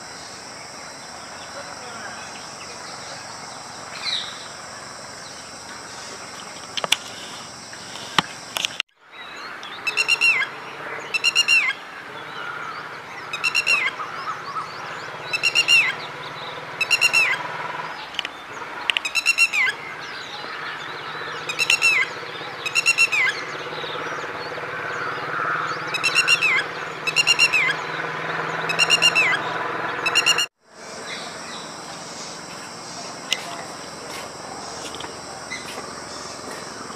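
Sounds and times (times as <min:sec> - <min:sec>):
bird calling sharp high notes: 0:13.3 - 0:14.6, 0:15.2 - 0:16.1, 0:16.8 - 0:17.5, 0:25.8 - 0:36.9.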